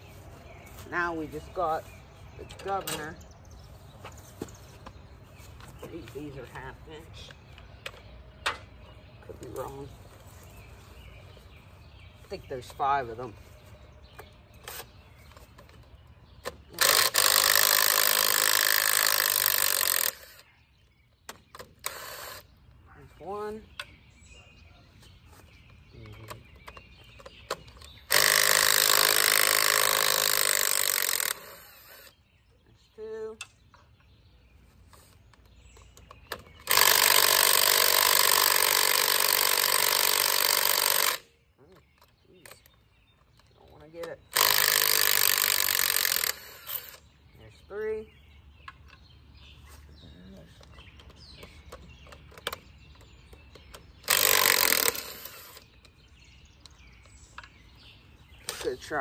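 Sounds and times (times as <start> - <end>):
impact driver hammering bolts: 16.4 - 20.4, 26.3 - 32.1, 35.9 - 41.2, 44.3 - 47.0, 51.0 - 55.7.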